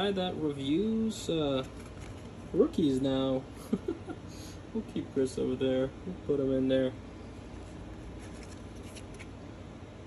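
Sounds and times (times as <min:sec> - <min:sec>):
low room noise: 0:00.0 - 0:10.0
cards rustling and clicking: 0:01.6 - 0:02.4, 0:07.5 - 0:09.4.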